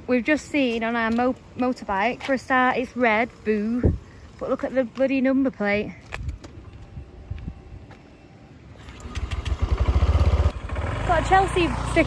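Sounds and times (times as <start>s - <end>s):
scooter engine starting and running: 8.8s - 12.0s.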